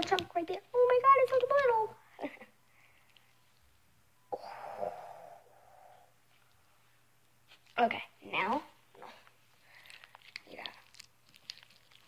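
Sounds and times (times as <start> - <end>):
person exhaling breathily: 4.3 - 6.1.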